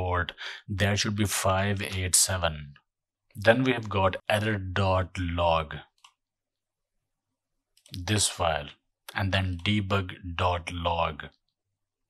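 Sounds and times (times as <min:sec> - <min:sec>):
person speaking: 0:00.0 - 0:06.0, 0:07.8 - 0:11.3.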